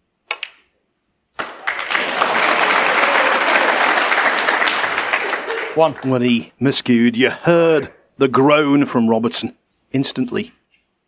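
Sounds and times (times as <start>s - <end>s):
snooker ball click: 0.3s - 0.7s
audience applauding: 1.4s - 6.4s.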